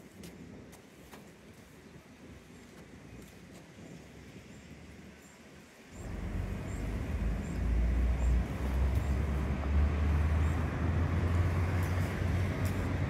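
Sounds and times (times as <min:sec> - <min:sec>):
road traffic rumble: 0:05.9 - 0:13.0.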